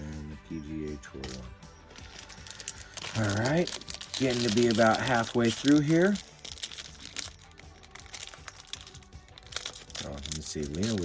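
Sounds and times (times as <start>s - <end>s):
foil crinkling and tearing: 2.0s - 11.0s
foil wrapper crinkling and tearing: 2.0s - 11.0s.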